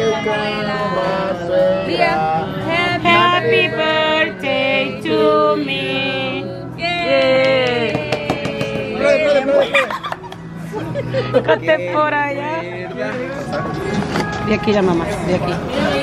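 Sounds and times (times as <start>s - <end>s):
group of people singing: 0.0s - 9.5s, 12.4s - 16.0s.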